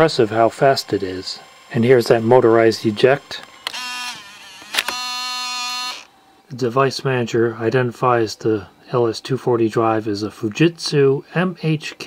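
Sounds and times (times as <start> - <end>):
disk drive motor whine: 0.0 - 6.4
disk drive click: 3.4 - 5.1.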